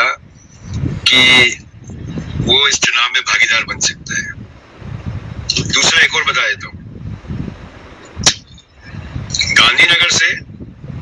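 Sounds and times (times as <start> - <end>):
car horn honk: 1.1 - 1.6.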